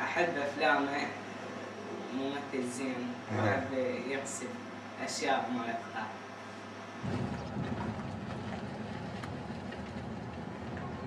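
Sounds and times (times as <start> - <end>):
car engine and road rumble: 7.0 - 11.0.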